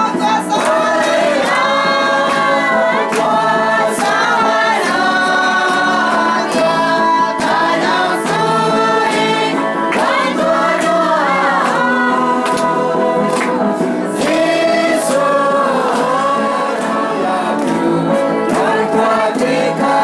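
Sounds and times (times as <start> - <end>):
choir singing long notes: 0.5 - 20.0.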